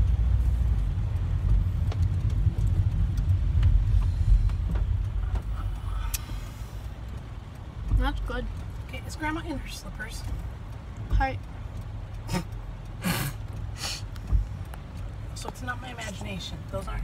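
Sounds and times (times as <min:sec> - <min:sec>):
car cabin road and engine rumble: 0:00.0 - 0:17.0
faint clicks: 0:00.1 - 0:17.0.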